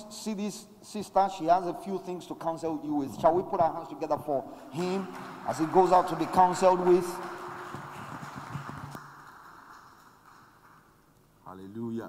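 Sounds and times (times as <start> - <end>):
audience applauding: 4.7 - 11.0.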